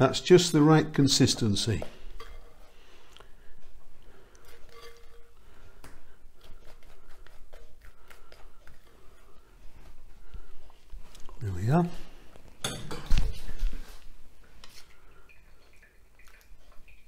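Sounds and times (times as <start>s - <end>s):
wet plops of filling: 15.0s - 17.0s.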